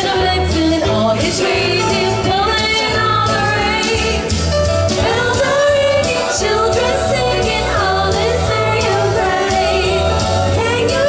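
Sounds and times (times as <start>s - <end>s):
backing track bass: 0.0s - 11.0s
women singing into microphones: 0.0s - 11.0s.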